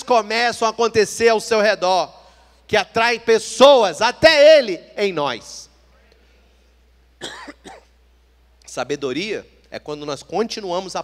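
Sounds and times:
low steady hum: 0.0 - 11.0
man coughing: 7.2 - 8.0.

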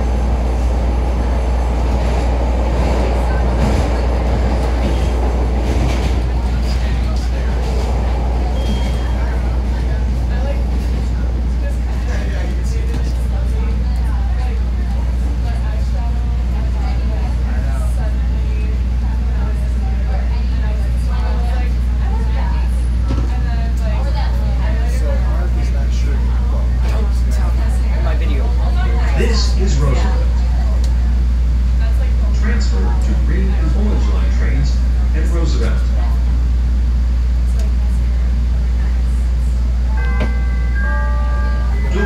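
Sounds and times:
passengers talking: 0.0 - 42.0
subway train rumbling: 0.0 - 42.0.

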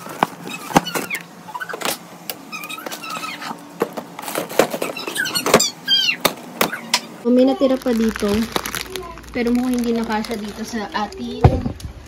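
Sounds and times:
packaging rustling: 7.6 - 11.2.

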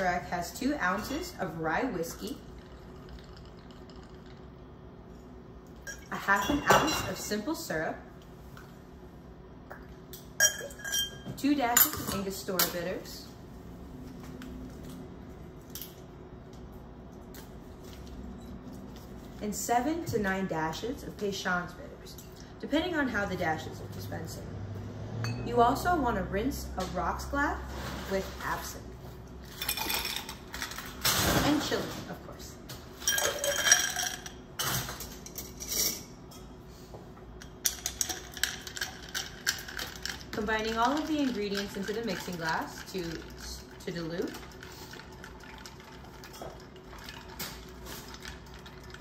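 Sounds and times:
low room hum: 0.0 - 49.0.

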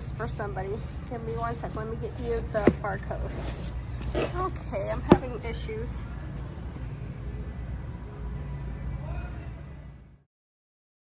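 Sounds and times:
store background hum: 0.0 - 10.2.

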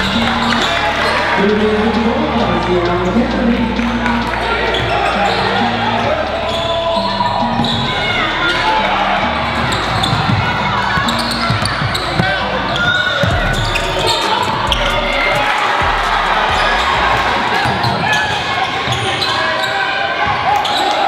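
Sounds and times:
hubbub of voices: 0.0 - 21.0.

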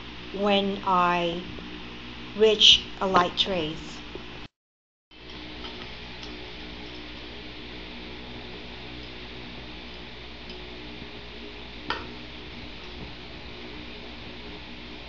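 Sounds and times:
low background hum: 0.0 - 4.5, 5.1 - 15.0.

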